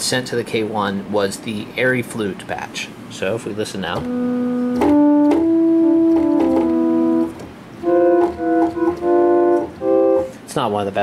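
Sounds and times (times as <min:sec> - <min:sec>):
synthesizer flute notes: 0:04.0 - 0:10.4.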